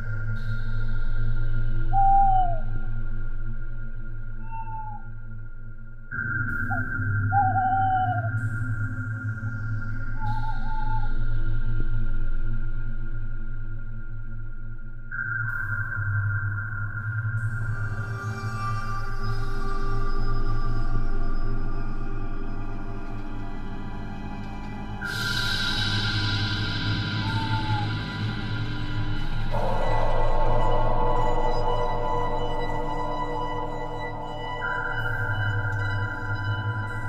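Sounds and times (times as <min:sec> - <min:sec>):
synth drone: 0:17.4 - 0:37.0
hoot-like note sliding down: 0:29.5 - 0:35.8.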